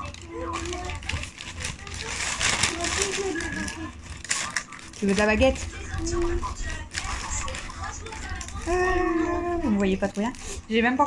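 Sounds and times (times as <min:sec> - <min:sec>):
soft voices: 0:00.0 - 0:10.8
rustling and handling noises: 0:00.0 - 0:11.0.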